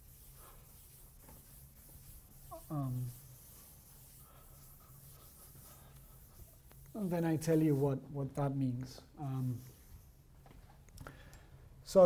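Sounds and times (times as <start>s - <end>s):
chalk writing on blackboard: 0.0s - 7.9s, 9.4s - 10.1s.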